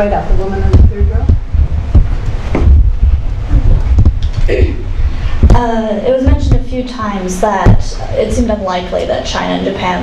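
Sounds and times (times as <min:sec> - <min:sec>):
microphone handling thumps: 0:00.4 - 0:08.0.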